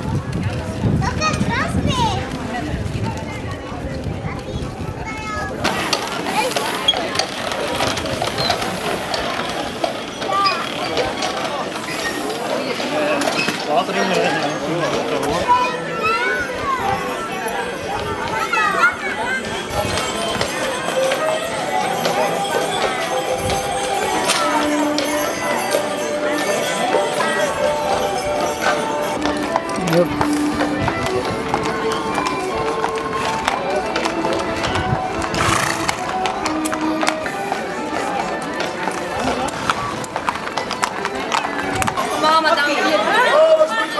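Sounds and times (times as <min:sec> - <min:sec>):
voices: 0:00.0 - 0:43.9
wooden cart wheels rattling: 0:00.0 - 0:43.9
music with held melody notes: 0:19.5 - 0:40.4
horse hooves clicking on asphalt: 0:19.7 - 0:43.7.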